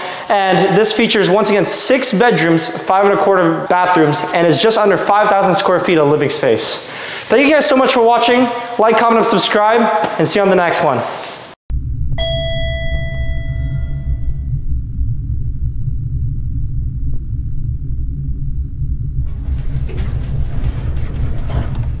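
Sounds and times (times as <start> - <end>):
deep steady rumble: 11.7 - 22.0
elevator bell chime: 12.2 - 14.4.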